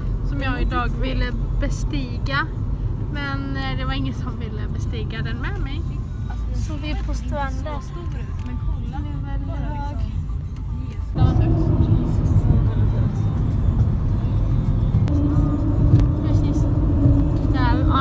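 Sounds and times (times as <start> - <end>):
road and tyre rumble: 0.0 - 18.0
steady hum: 11.2 - 18.0.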